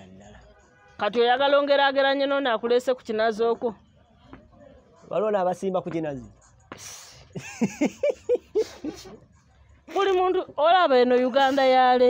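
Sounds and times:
young man laughing: 7.3s - 9.2s.

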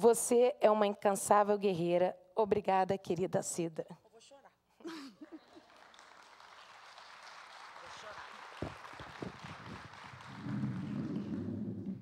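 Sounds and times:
audience applauding: 5.3s - 12.0s
microphone handling rumble: 9.2s - 12.0s.

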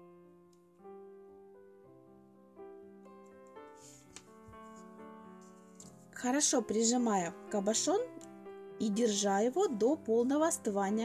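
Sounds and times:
soft piano music: 0.0s - 11.0s.

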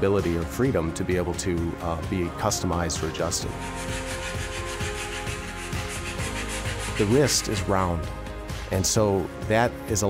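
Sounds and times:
background music: 0.0s - 10.0s
sandpaper scratching: 3.4s - 7.9s.

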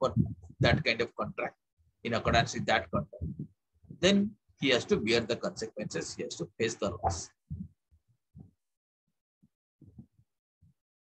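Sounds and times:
faint low thumps: 0.0s - 1.5s, 2.1s - 6.2s, 6.8s - 7.8s
man's voice: 0.0s - 1.5s, 2.1s - 3.3s.

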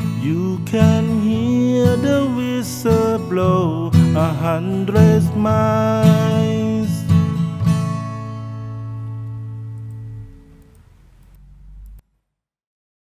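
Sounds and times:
acoustic guitar strums: 0.0s - 11.8s.

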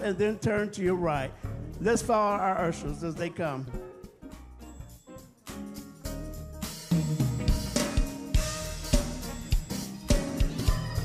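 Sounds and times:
bass notes: 0.0s - 11.0s
drum kit beat: 0.0s - 11.0s
keyboard notes: 2.6s - 11.0s.

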